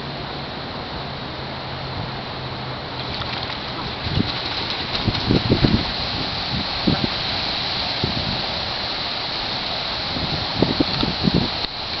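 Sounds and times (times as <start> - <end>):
wind hiss on microphone: 1.2 - 12.0.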